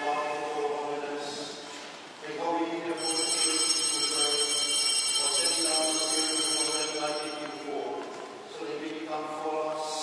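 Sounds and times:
bells ringing: 0:02.9 - 0:08.1.

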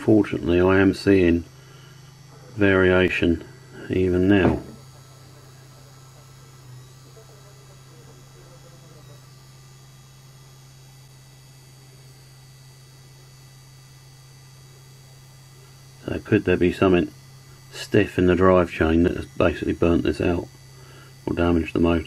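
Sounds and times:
small electric motor humming: 0:00.0 - 0:22.0.

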